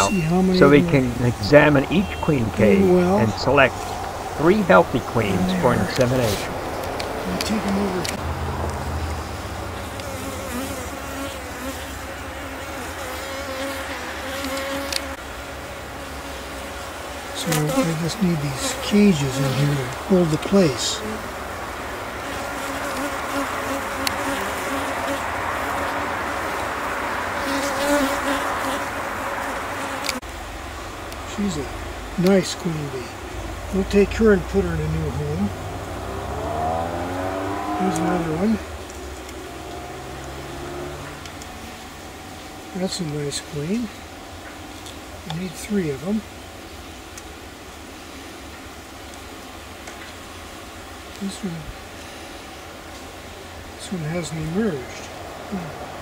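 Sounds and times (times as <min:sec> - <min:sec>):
honeybees buzzing: 0:00.0 - 0:56.0
steady background hiss: 0:00.0 - 0:56.0
low rumble: 0:00.1 - 0:09.8.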